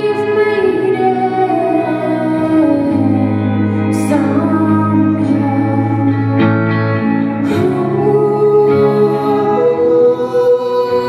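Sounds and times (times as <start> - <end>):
electric guitar: 0.0 - 11.0.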